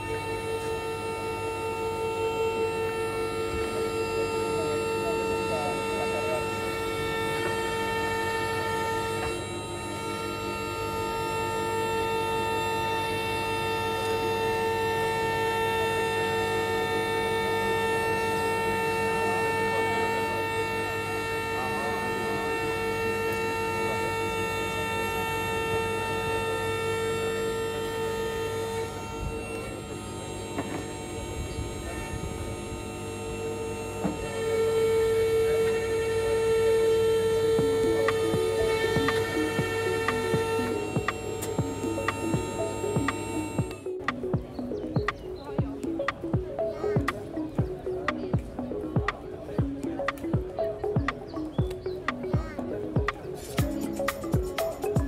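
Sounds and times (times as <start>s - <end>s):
electric motor and pump whining: 0.0s - 55.0s.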